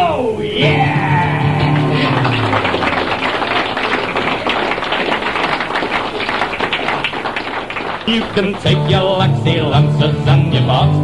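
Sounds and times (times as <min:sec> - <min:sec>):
music: 0:00.0 - 0:03.4, 0:08.1 - 0:11.0
audience applauding: 0:00.6 - 0:09.6.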